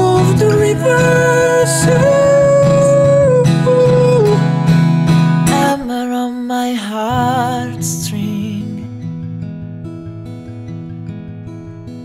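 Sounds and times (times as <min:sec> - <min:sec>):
man singing a long note: 0:00.0 - 0:04.4
acoustic guitar strumming: 0:00.0 - 0:12.0.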